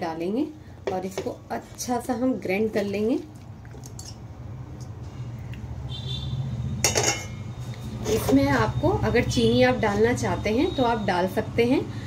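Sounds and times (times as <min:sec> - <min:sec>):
kitchen utensils handled: 0:06.8 - 0:07.4
spoon clinking on bowl: 0:06.8 - 0:07.4.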